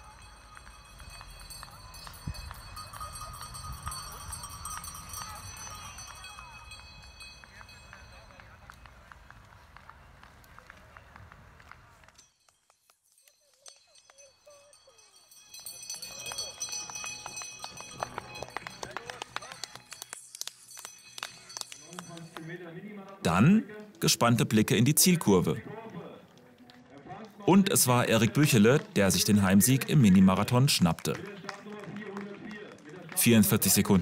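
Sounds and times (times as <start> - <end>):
spectators' voices: 21.2 - 34.0.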